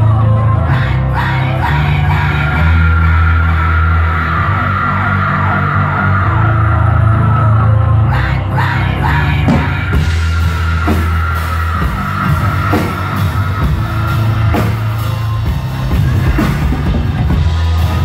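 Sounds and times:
synthesizer electronic rock: 0:00.0 - 0:18.0.

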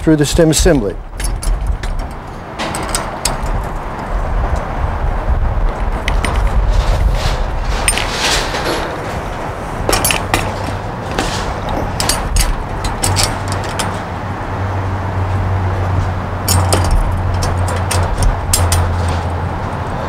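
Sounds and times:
metal clicks and clanks: 0:01.1 - 0:04.7, 0:05.7 - 0:14.2, 0:15.9 - 0:19.5.

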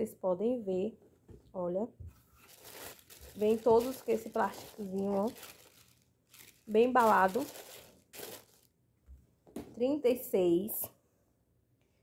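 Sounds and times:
thin plastic rustling: 0:02.2 - 0:08.7.

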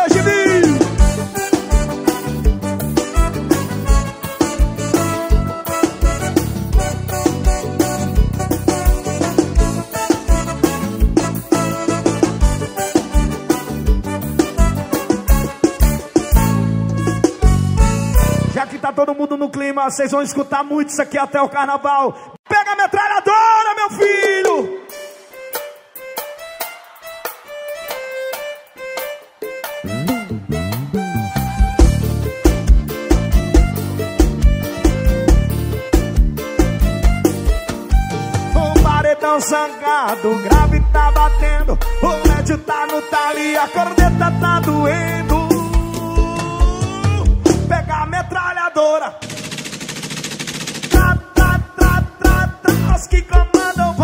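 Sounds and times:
band playing repeated melody: 0:00.0 - 0:18.9, 0:24.0 - 0:48.3, 0:49.0 - 0:54.0
music: 0:00.0 - 0:19.3, 0:23.1 - 0:54.0
sharp percussion beats: 0:24.2 - 0:39.0, 0:49.2 - 0:53.9
machine-gun fire: 0:49.2 - 0:51.0.

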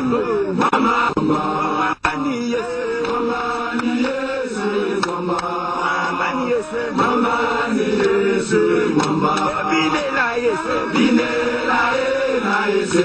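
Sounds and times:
men chanting together: 0:00.0 - 0:13.0.

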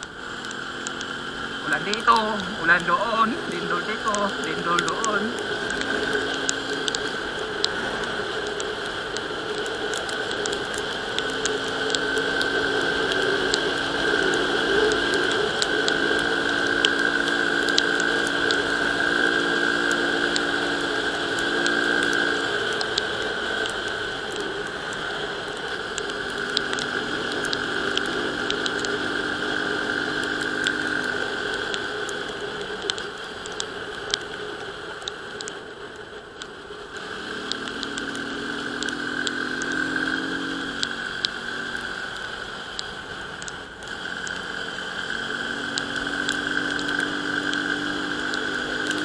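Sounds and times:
motorcycle engine hum: 0:00.0 - 0:49.0
raindrops ticking on camera: 0:00.0 - 0:49.0
tyre noise on wet road: 0:00.0 - 0:49.0.

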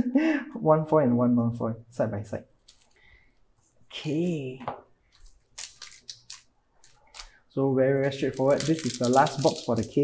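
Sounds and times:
foil wrappers crinkling: 0:05.2 - 0:07.4, 0:08.0 - 0:10.0.

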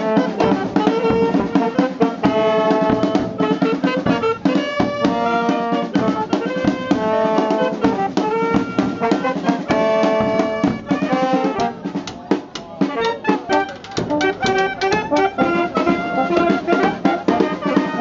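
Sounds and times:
brass instruments: 0:00.0 - 0:18.0
clarinet: 0:00.0 - 0:18.0
snare and bass drums: 0:00.0 - 0:18.0.

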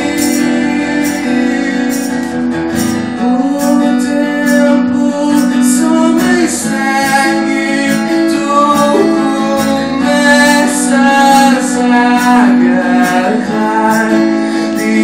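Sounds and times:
cajon beat: 0:00.0 - 0:15.0
strummed acoustic guitar: 0:00.0 - 0:15.0
man singing long notes: 0:03.2 - 0:15.0.

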